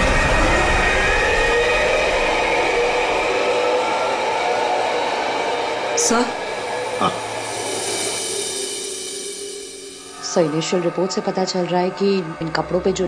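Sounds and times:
faint gliding tones: 6.0s - 13.0s.

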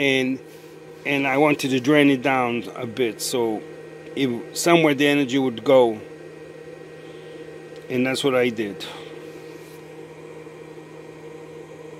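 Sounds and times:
machine hum: 0.0s - 11.9s.

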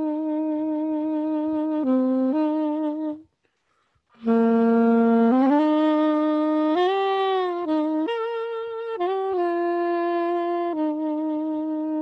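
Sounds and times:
saxophone melody: 0.0s - 3.4s, 4.1s - 12.0s.

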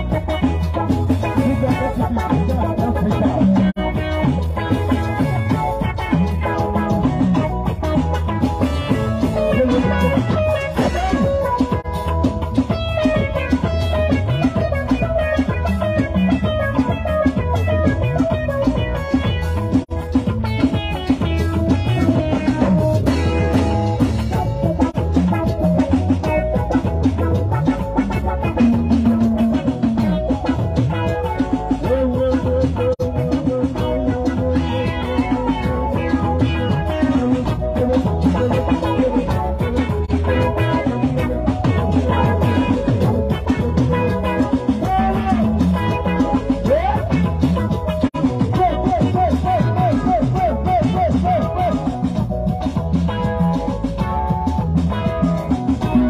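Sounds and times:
drums: 0.0s - 56.0s
electronic keyboard: 0.0s - 56.0s.

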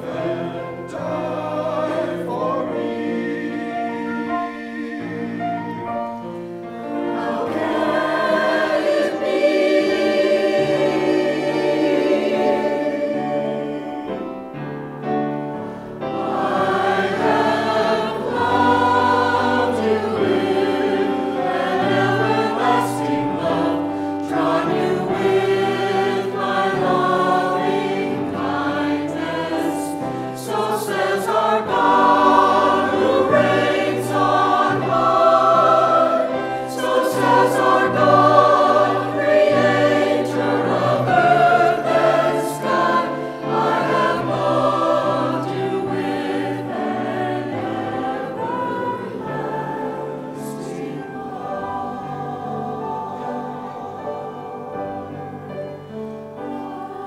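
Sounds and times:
choir singing gospel: 0.0s - 57.0s.

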